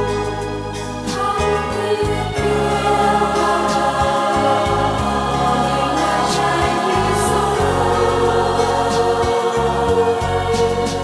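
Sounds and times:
bass line: 0.0 - 11.0
slow ballad with held chords: 0.0 - 11.0
person singing: 1.1 - 11.0.

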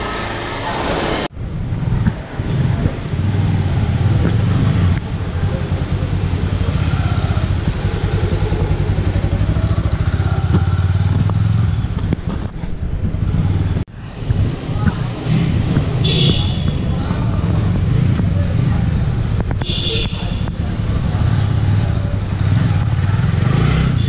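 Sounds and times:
motorcycle engine running: 1.7 - 24.0.

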